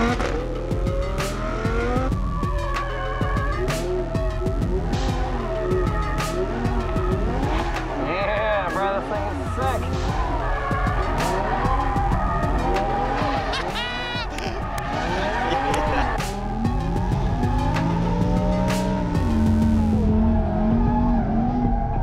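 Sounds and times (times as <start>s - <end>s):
background music: 0.0s - 22.0s
car engine revving: 0.0s - 22.0s
tyres squealing: 13.0s - 16.2s.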